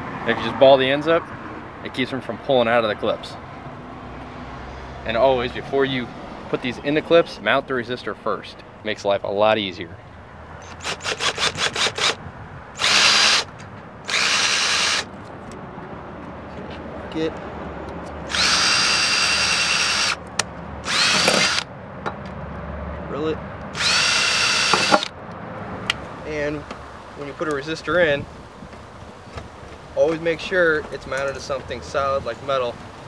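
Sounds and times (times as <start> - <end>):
cordless drill whining: 10.6 - 12.2, 12.8 - 13.5, 14.1 - 15.1, 18.3 - 20.2, 20.8 - 21.6, 23.7 - 25.1.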